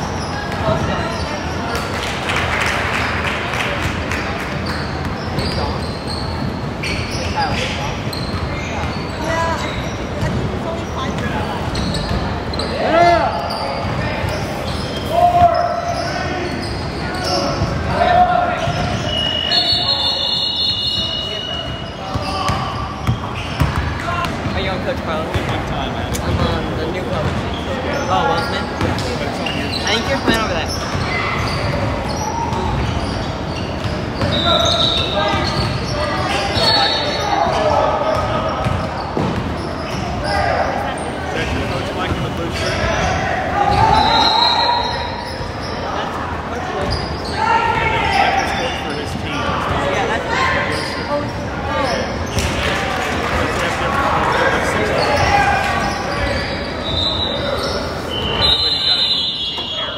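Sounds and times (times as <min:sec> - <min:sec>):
sneaker squeaks: 0:00.0 - 0:02.7, 0:04.1 - 0:52.8, 0:54.3 - 0:59.9
players calling out: 0:00.0 - 0:59.9
basketball bouncing on court: 0:10.2 - 0:10.5, 0:21.6 - 0:27.6, 0:38.1 - 0:40.0.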